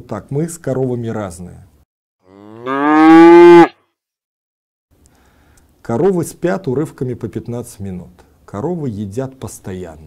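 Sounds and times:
cow mooing: 0:02.2 - 0:03.7.

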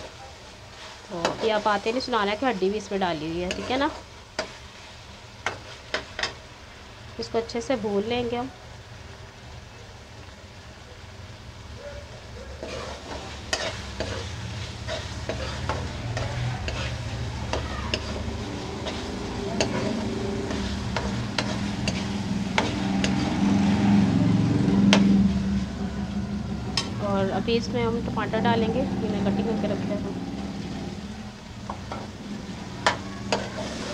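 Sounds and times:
meat sizzling in oil: 0:00.0 - 0:33.9
metal spoon scraping a wok: 0:03.2 - 0:04.8, 0:12.6 - 0:24.1, 0:31.8 - 0:33.9
steady low hum: 0:12.6 - 0:33.9.

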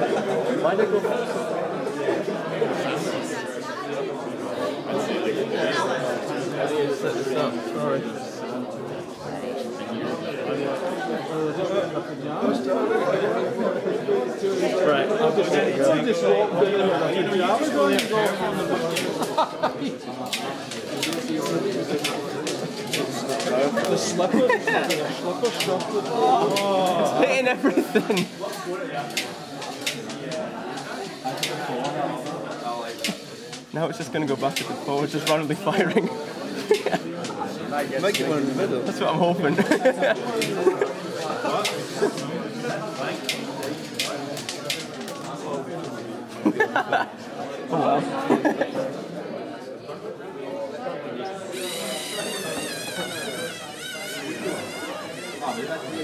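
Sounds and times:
crowd murmuring and laughing: 0:00.0 - 0:56.0.

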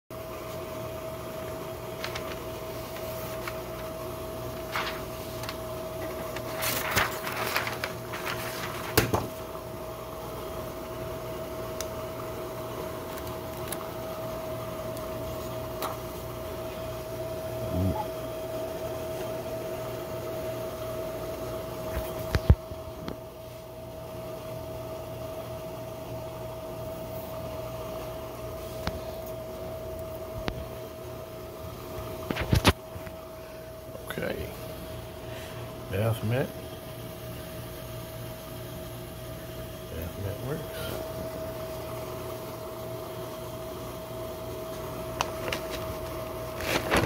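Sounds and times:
steady machine hum: 0:00.1 - 0:47.0
rustling handling noises: 0:01.8 - 0:09.4, 0:44.6 - 0:47.0.

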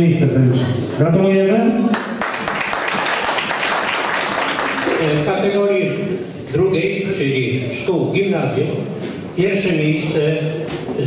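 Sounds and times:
audience applauding: 0:01.9 - 0:05.3.

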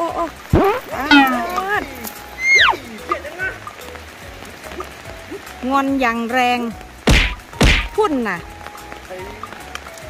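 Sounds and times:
elephant calf squeaking: 0:00.6 - 0:03.8.

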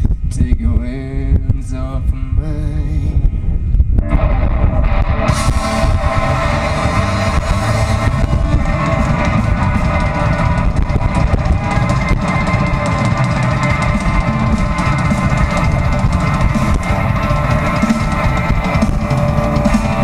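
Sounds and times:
live rock band playing: 0:04.0 - 0:20.0.

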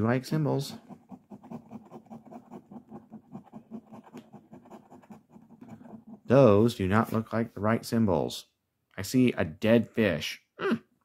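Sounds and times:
coin scraping scratch ticket: 0:00.7 - 0:06.2.

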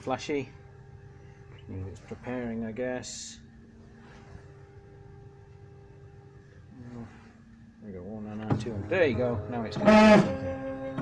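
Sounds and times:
printer humming: 0:05.3 - 0:11.0.

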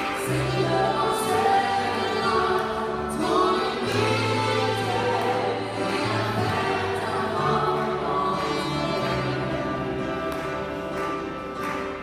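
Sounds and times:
woman singing: 0:00.0 - 0:10.6.

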